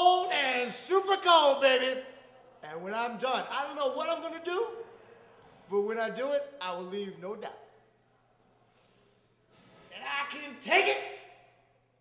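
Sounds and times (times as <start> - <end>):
faint breath drawn in: 8.5 - 9.8
man speaking: 9.9 - 11.4.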